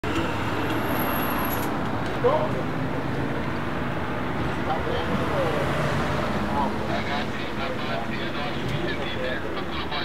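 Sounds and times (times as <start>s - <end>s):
motor vehicle rumble: 0.0s - 10.0s.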